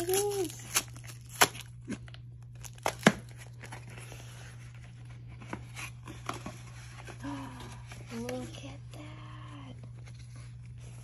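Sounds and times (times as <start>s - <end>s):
cardboard ripping: 0.0s - 4.1s
box and paper rustling: 0.0s - 8.8s.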